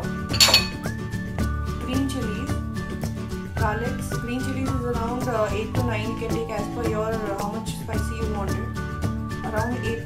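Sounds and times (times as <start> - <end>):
background music: 0.0 - 10.0
ceramic dishes clinking: 0.3 - 0.9.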